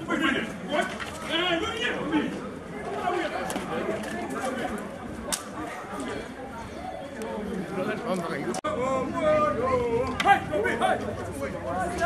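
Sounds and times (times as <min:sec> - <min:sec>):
people talking and calling out: 0:00.0 - 0:12.0.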